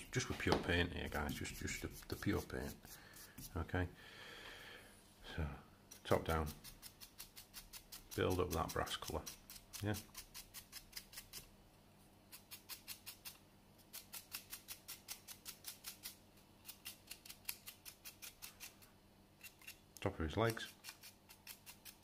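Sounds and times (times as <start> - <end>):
paintbrush bristles scratching: 1.1 - 3.7, 5.9 - 11.5.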